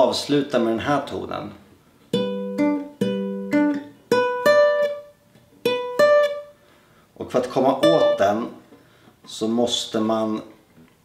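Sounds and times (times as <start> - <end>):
fingerpicked acoustic guitar: 2.1 - 8.5.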